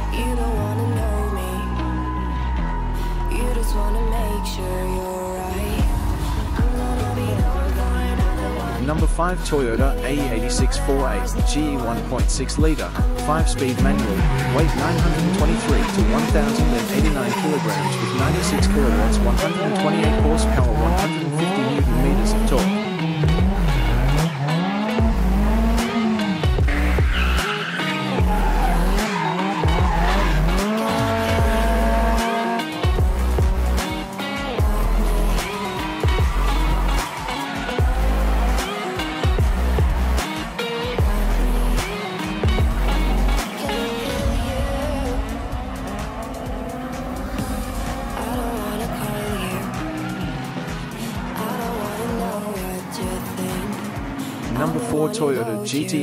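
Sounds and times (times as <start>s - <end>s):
car engine revving: 0.0s - 55.9s
music with pulsing bass: 0.0s - 56.0s
tyres squealing: 13.8s - 32.8s.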